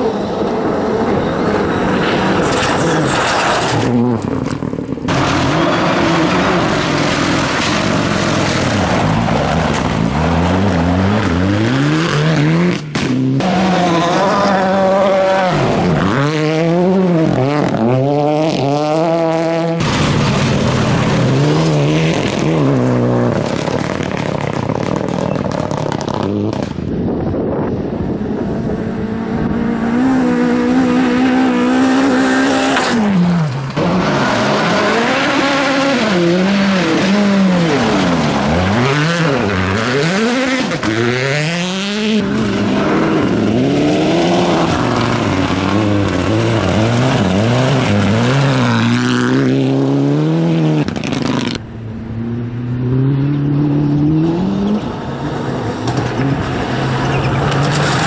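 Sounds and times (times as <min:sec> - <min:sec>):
rally car engines revving: 0:00.0 - 0:58.0.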